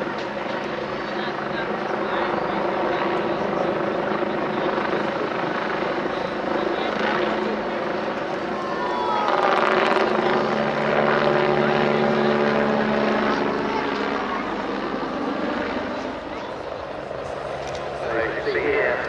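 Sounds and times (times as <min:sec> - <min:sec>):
helicopter flying overhead: 0:00.0 - 0:19.0.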